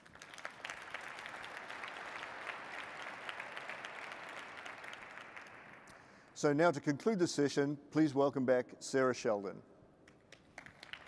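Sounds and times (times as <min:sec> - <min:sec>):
audience applauding: 0:00.0 - 0:05.9, 0:10.5 - 0:11.0.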